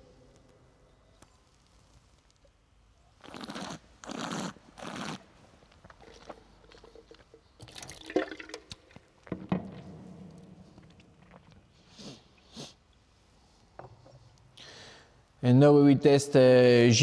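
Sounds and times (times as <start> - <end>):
wine splashing into bucket: 7.6 - 9.4.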